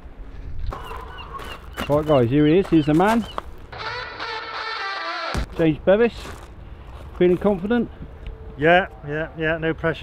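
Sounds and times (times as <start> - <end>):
bird chirping: 0.7 - 3.6.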